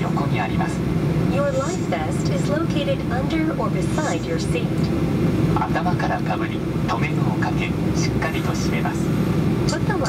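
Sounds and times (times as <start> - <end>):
recorded narration: 0.0 - 4.9, 5.6 - 10.0
airplane cabin rumble: 0.0 - 10.0.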